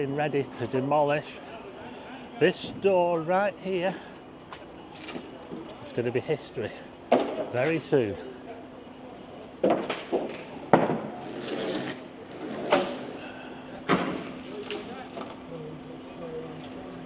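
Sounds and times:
steady low hum: 0.0s - 17.0s
boards banging and clattering: 9.6s - 11.9s.

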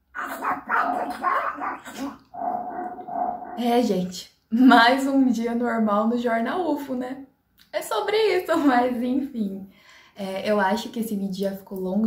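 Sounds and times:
squawky cartoon duck voice: 0.2s - 2.2s.

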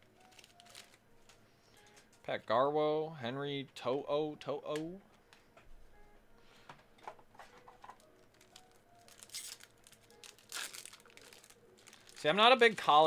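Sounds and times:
wrapper crinkling and tearing: 0.2s - 1.4s, 7.8s - 13.0s.

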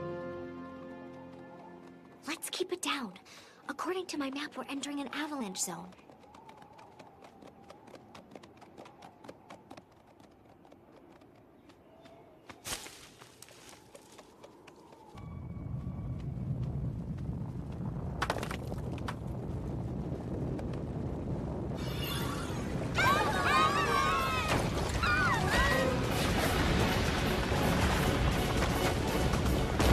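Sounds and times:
low rockslide rumble: 15.1s - 29.9s.

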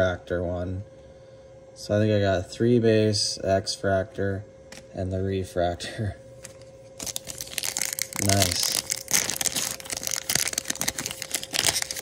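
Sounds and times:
wrapper crinkling open: 6.4s - 12.0s.

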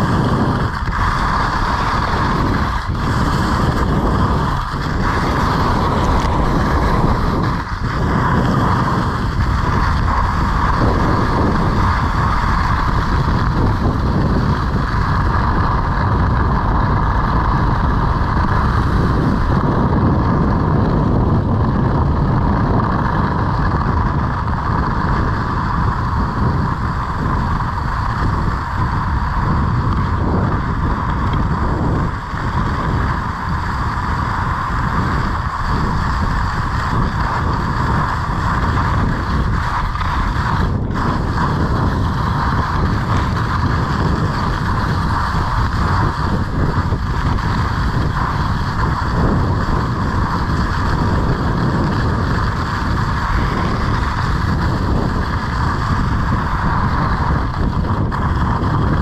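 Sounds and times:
skis scraping on snow: 0.0s - 59.0s
wind rushing over microphone: 0.0s - 59.0s.

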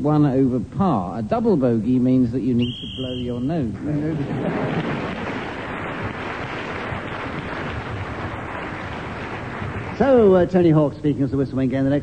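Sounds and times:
audience laughing: 3.8s - 6.0s
audience applauding: 4.0s - 10.5s.

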